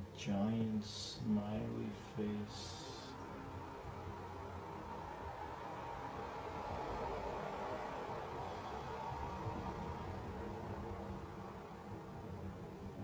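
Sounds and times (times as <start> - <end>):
faint hum: 0.0 - 13.0
low background hiss: 0.0 - 13.0.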